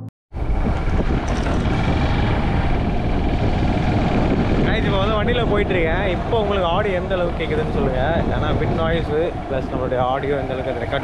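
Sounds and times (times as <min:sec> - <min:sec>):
wind buffeting microphone: 0:00.3 - 0:11.0
man speaking: 0:04.7 - 0:11.0.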